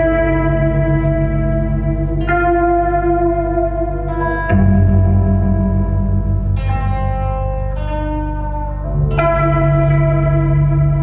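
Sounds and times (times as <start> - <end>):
acoustic guitar with heavy reverb: 0.0 - 11.0
steady low drone: 0.0 - 11.0.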